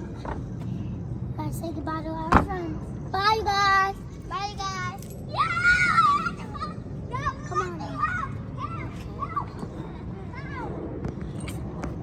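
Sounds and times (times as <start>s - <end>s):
children calling out: 5.3s - 10.8s.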